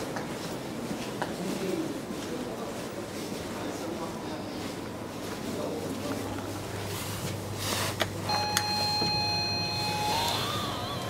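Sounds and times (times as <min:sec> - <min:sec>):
elevator button click: 0:08.3 - 0:11.0
steady electronic beep: 0:08.3 - 0:11.0.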